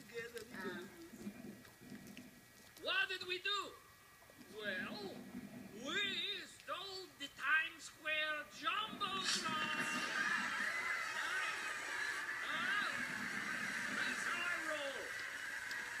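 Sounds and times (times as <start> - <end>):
person speaking in room: 2.8 - 10.5
television cartoon voices and music: 5.8 - 16.0.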